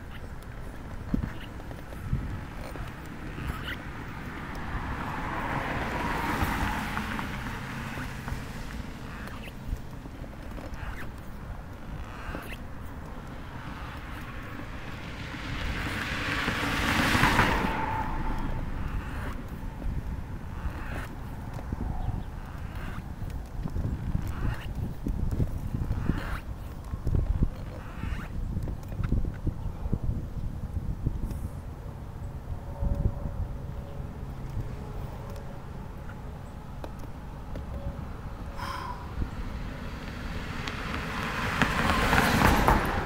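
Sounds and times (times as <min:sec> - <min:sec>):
cars passing: 0:00.0 - 0:26.5, 0:31.5 - 0:43.0
wheelchair wheels rolling on concrete: 0:00.0 - 0:29.0.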